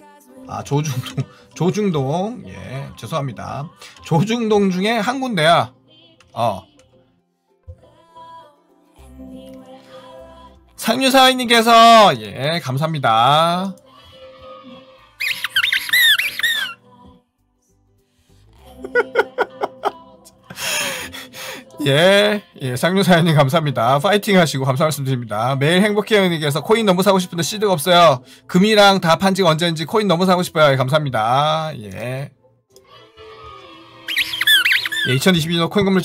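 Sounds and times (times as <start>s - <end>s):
electronic squeaky chirps: 15.2s - 16.8s, 34.1s - 35.6s.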